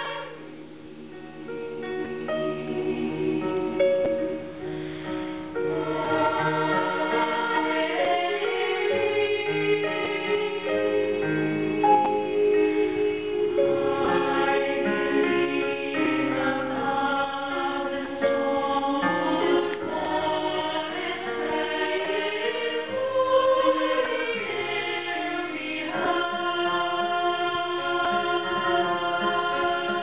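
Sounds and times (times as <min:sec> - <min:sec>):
women's choir singing in harmony: 0:00.0 - 0:30.0.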